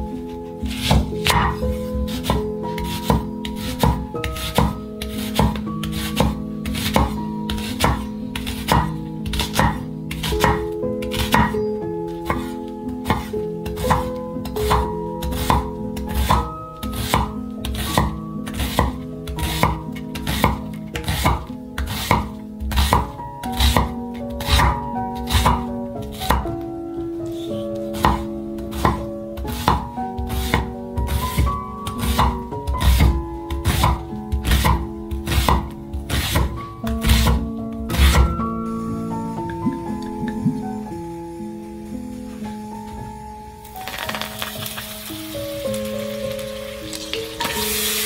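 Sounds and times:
knife chopping onion on wooden board: 0.0 - 38.5
background music: 0.0 - 48.0.

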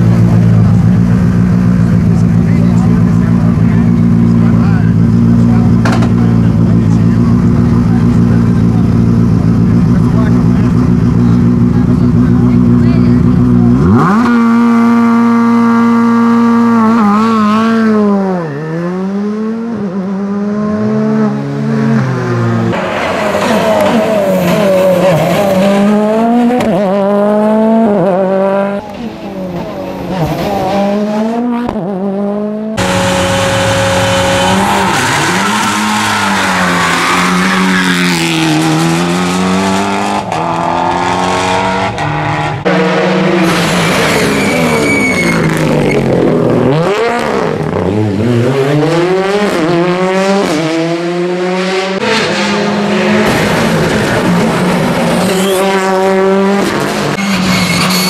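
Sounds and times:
rally car engines revving hard: 0.0 - 58.0
tyre squeal: 18.2 - 19.0, 33.0 - 38.2, 43.6 - 46.1, 55.2 - 56.0, 57.2 - 58.0.

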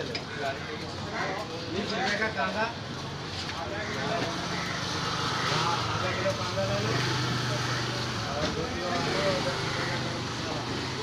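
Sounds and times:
people talking: 3.5 - 11.0.

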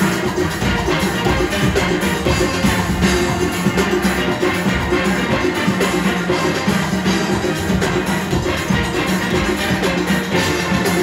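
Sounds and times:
drums and percussion: 0.0 - 11.0
steel band playing: 0.0 - 11.0.

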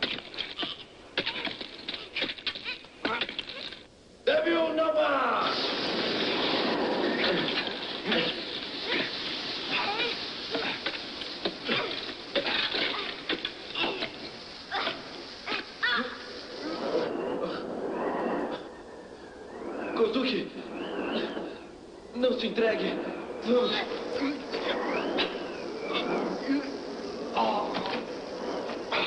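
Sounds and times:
loud steady hiss: 0.0 - 29.0
voice-like cries: 11.6 - 17.7.

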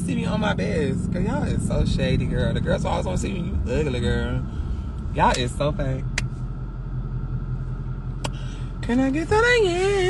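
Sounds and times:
car engine rumble from inside: 0.0 - 10.0.

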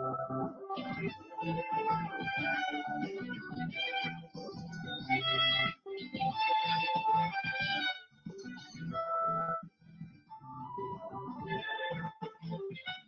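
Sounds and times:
solo violin through video call: 4.9 - 9.0.

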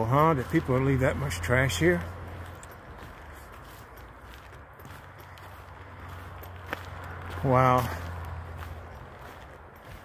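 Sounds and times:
footsteps on dirt trail: 0.0 - 10.0.

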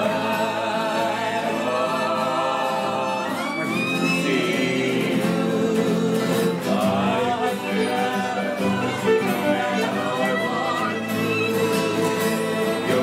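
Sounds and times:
fiddle playing: 0.0 - 6.0, 6.6 - 13.0
acoustic guitars playing: 0.0 - 13.0.

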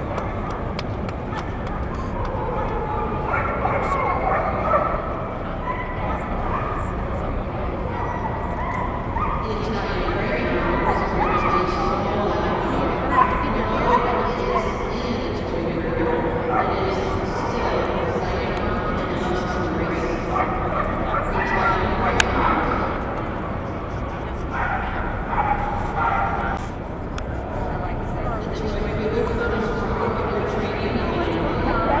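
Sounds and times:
crowd talking in a hall: 0.0 - 32.0
din of voices: 9.4 - 23.0.

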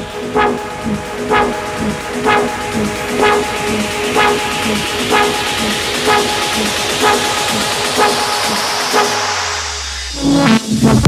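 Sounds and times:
horn-like synth stabs: 0.0 - 11.0
low bass tone: 0.0 - 11.0.

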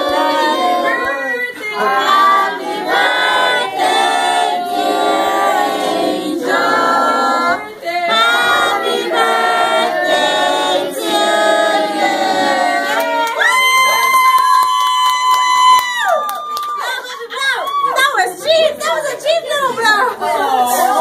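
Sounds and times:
group singing unaccompanied: 0.0 - 13.4.

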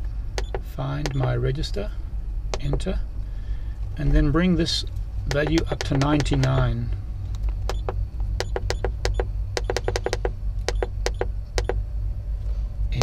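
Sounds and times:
steady low rumble: 0.0 - 13.0.

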